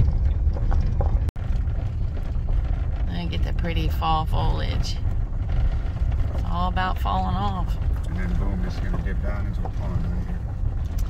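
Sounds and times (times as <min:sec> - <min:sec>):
vehicle rumble inside cabin: 0:00.0 - 0:11.0.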